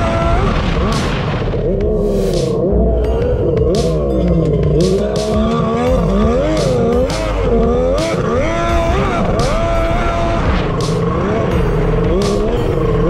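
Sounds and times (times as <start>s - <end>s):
jet ski engine running: 0.0s - 13.0s.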